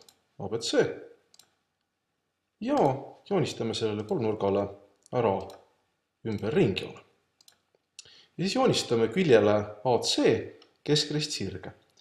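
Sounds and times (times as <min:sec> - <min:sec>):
man speaking: 0:00.4 - 0:01.0, 0:02.6 - 0:05.6, 0:06.3 - 0:07.1, 0:08.4 - 0:11.8.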